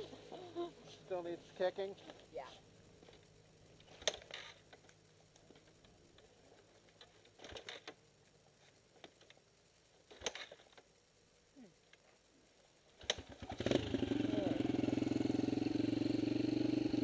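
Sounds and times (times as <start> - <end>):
dirt bike kick-start clatters: 3.8 - 6.3, 6.9 - 8.0, 10.1 - 11.0, 13.0 - 15.0.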